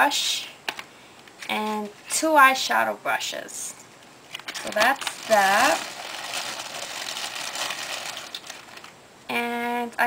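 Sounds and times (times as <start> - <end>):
packaging rustling and crinkling: 4.3 - 9.0.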